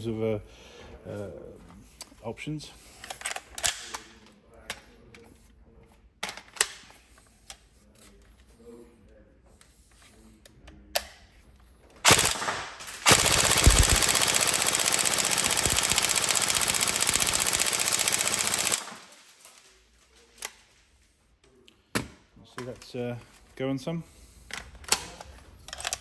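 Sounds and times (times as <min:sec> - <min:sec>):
airsoft rifle full-auto bursts: 0:12.1 - 0:19.2.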